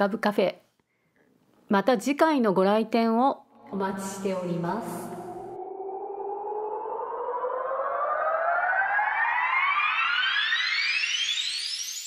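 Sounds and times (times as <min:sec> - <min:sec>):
rising tone sweep: 0:03.6 - 0:12.0.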